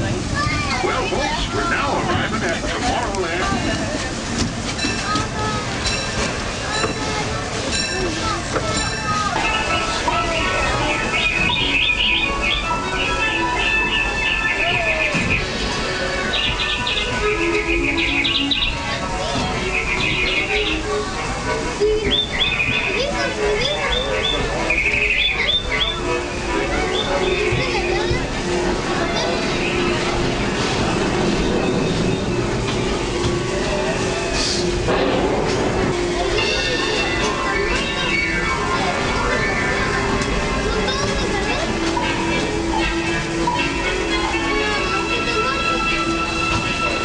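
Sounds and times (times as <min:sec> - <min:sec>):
held musical notes: 0:00.0 - 0:47.0
long steady high tones: 0:00.0 - 0:47.0
low train rumble: 0:00.0 - 0:47.0
bird-like trill and chirps: 0:09.4 - 0:15.6, 0:16.2 - 0:18.9, 0:19.6 - 0:20.9, 0:22.0 - 0:26.2.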